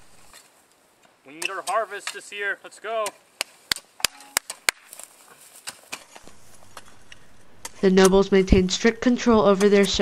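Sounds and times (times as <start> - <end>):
hand hoes chopping hard soil: 0.3 - 8.2, 9.3 - 10.0.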